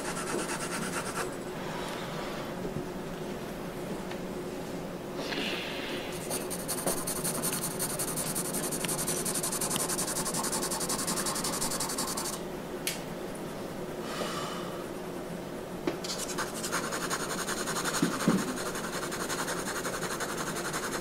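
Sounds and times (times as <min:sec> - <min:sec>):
brush scrubbing charcoal on paper: 0:06.3 - 0:12.4, 0:16.2 - 0:21.0.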